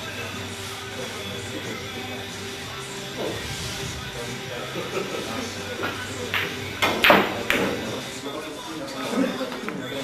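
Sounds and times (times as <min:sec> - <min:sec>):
low chatter: 0:00.0 - 0:10.0
pool balls clacking: 0:05.8 - 0:08.0.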